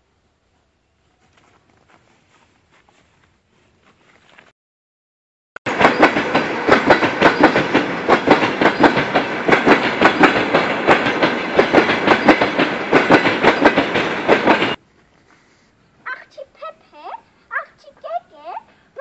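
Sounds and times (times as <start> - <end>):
freight train wheels clacking: 5.7 - 14.8.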